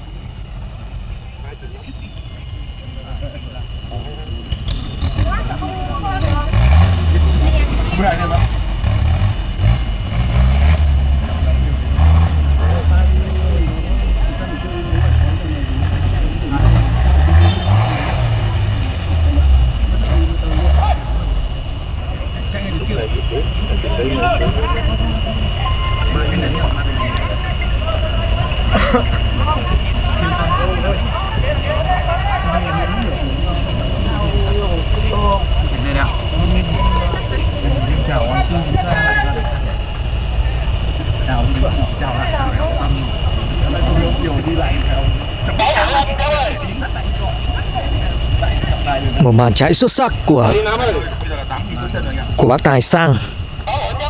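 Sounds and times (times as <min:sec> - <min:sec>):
race car engine revving: 0:00.0 - 0:54.0
voices: 0:00.0 - 0:54.0.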